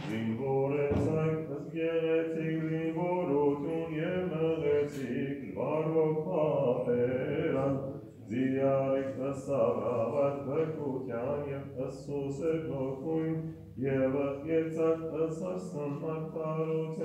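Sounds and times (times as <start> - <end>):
man chanting a hymn: 0.0 - 17.0.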